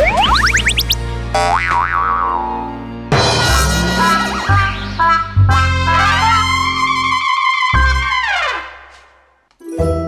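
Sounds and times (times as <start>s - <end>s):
wobbling boing: 0.0s - 2.7s
background music: 0.0s - 8.7s, 9.6s - 10.0s.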